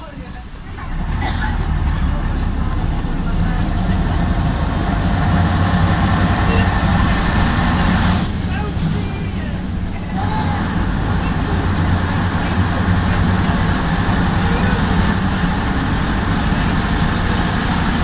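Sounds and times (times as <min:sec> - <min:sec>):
bus body rattling: 0:00.0 - 0:18.0
bus engine under load: 0:00.0 - 0:18.0
road noise: 0:00.0 - 0:18.0.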